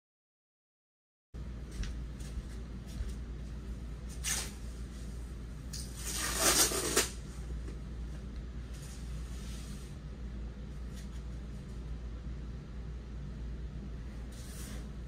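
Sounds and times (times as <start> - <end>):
low room hum: 1.4 - 15.0.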